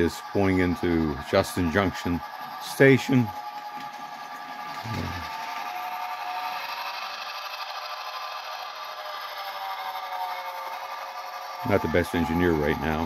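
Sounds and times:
faint motor whine: 0.0s - 13.0s
model train wheels rumbling: 0.0s - 13.0s.

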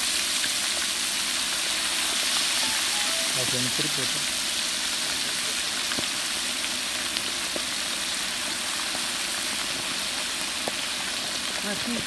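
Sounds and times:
meat deep-frying in oil: 0.0s - 12.0s.

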